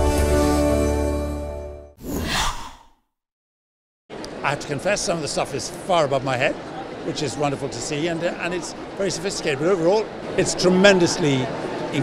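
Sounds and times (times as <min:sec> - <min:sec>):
breathy whoosh: 0:02.0 - 0:03.0.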